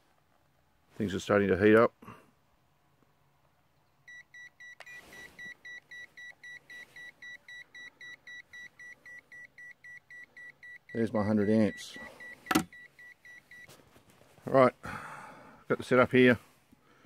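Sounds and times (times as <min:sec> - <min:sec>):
meter beeping rapidly: 0:04.1 - 0:13.7.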